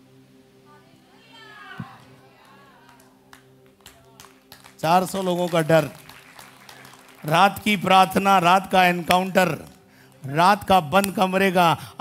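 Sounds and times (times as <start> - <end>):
soft thump: 1.8 - 2.2.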